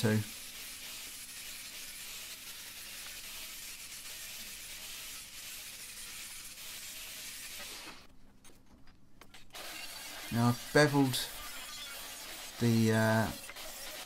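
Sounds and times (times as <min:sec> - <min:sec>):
angle grinder grinding metal: 0:00.0 - 0:08.1, 0:09.5 - 0:14.0.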